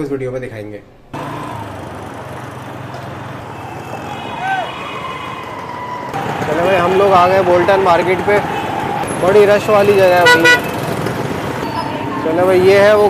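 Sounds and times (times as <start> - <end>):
traffic engines and road noise: 1.1 - 13.0.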